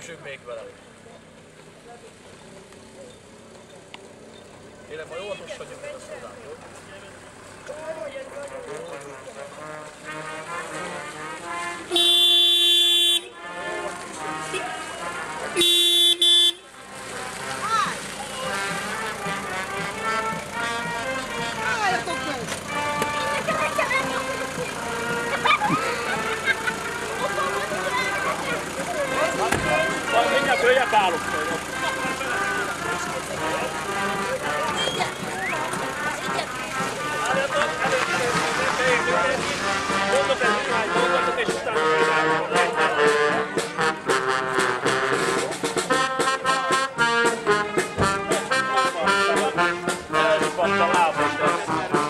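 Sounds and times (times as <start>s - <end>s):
people talking: 4.7s - 9.9s, 17.0s - 52.0s
vehicle horn: 8.5s - 52.0s.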